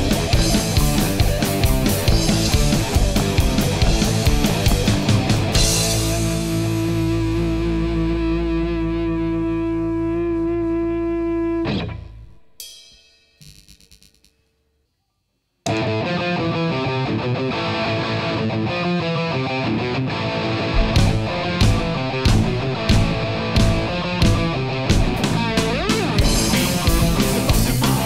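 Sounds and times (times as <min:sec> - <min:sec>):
distorted guitar chord ringing: 0:00.0 - 0:12.6, 0:19.2 - 0:28.0
rock band playing: 0:00.0 - 0:12.6, 0:15.7 - 0:28.0.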